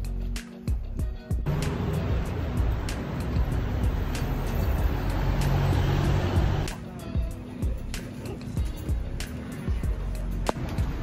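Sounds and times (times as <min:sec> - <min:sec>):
background music with beat: 0:00.0 - 0:11.0
passing vehicles: 0:01.5 - 0:07.0, 0:07.7 - 0:11.0.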